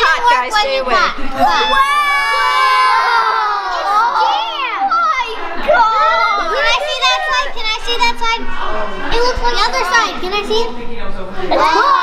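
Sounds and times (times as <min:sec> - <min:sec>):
children talking and exclaiming: 0:00.0 - 0:12.0.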